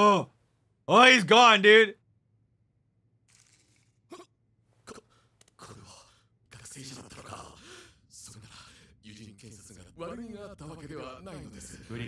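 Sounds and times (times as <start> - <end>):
man speaking: 0.9 - 2.0.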